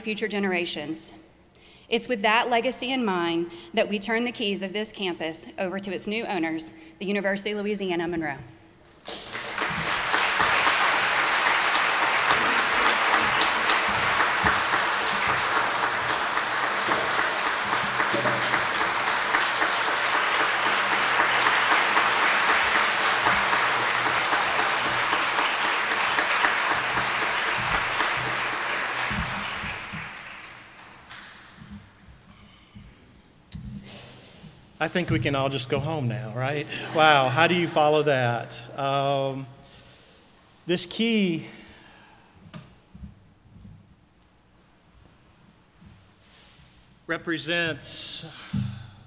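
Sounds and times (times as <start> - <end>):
audience applauding: 8.9 - 31.6.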